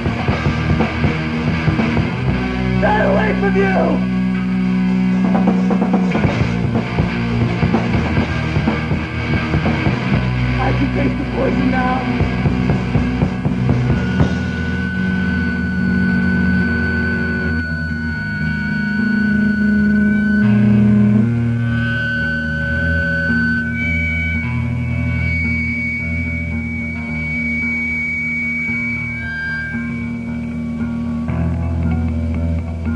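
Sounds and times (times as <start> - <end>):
held guitar notes ringing: 0.0 - 32.9
rock band playing: 0.0 - 32.9.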